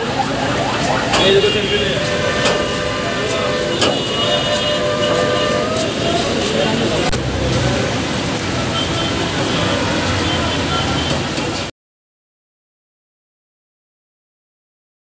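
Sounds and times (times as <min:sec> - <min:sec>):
city traffic noise: 0:00.0 - 0:11.7
people's voices: 0:00.0 - 0:11.7.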